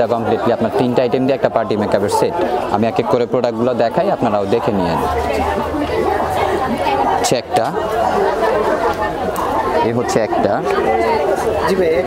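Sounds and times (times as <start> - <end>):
man speaking: 0.0 - 5.1
crowd chatter in large hall: 0.0 - 12.0.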